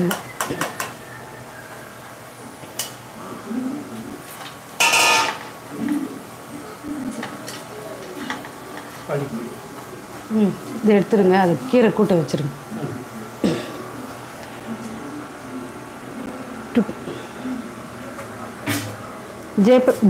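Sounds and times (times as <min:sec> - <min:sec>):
loud ringing metal clang: 0:04.8 - 0:05.5.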